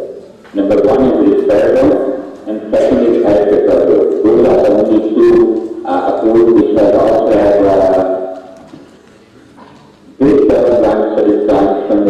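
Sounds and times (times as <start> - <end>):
garbled man's voice over loudspeakers: 0.0 - 8.8, 10.2 - 12.0.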